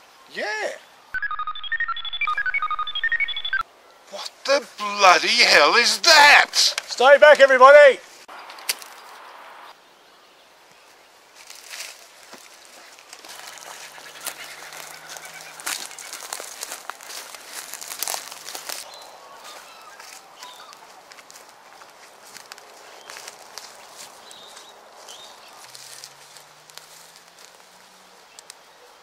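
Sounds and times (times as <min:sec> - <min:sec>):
twigs cracking: 0:08.3 - 0:09.4, 0:11.4 - 0:28.7
footsteps crunching on dry leaves: 0:10.9 - 0:28.6.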